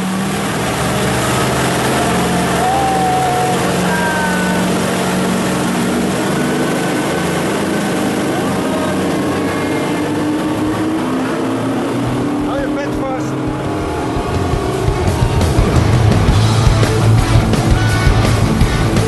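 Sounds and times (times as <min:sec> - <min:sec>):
outboard motors running: 0:00.0 - 0:19.0
rush of boat wake: 0:00.0 - 0:19.0.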